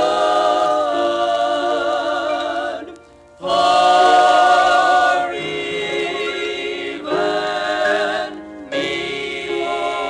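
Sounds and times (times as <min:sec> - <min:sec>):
male quartet singing in harmony: 0:00.0 - 0:10.0.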